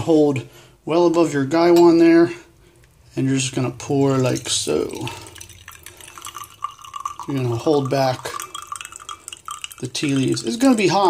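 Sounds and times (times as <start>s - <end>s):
tea pouring into teapot: 2.7s - 11.0s.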